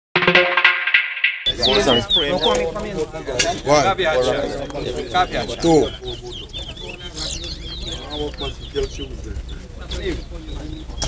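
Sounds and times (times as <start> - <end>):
finches chirping: 1.5 - 2.7, 4.8 - 11.0
people's voices: 1.5 - 11.0.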